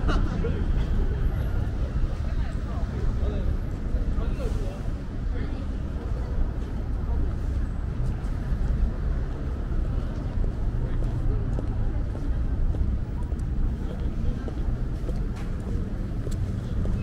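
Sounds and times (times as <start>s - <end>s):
road traffic rumble: 0.0s - 17.0s
voices of passersby: 0.0s - 17.0s.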